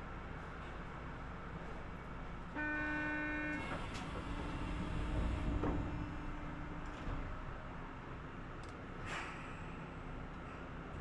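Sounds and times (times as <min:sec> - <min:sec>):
tram interior rumble: 0:00.0 - 0:11.0
tram horn toot: 0:02.5 - 0:07.4.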